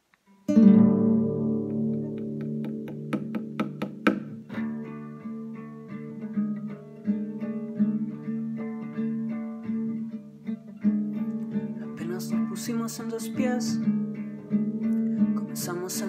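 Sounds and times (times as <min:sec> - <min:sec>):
classical guitar playing: 0:00.0 - 0:16.0.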